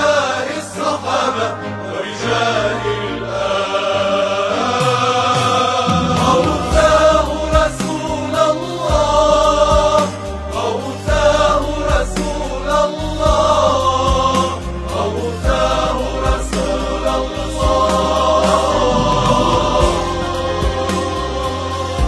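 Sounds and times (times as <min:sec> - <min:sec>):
choir singing a devotional chant: 0:00.0 - 0:22.0
low bass line: 0:06.2 - 0:22.0.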